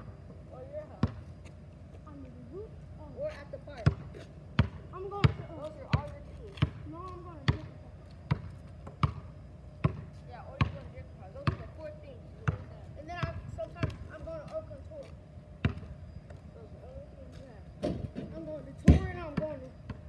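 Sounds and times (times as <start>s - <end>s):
basketball bouncing on asphalt: 0.0s - 2.2s, 3.2s - 16.5s, 17.2s - 20.0s.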